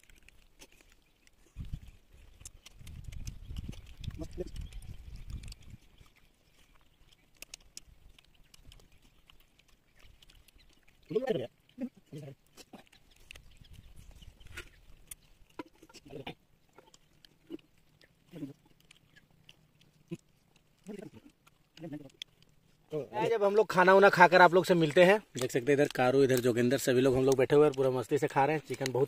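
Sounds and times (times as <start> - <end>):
people chewing and smacking: 0.0 - 29.0.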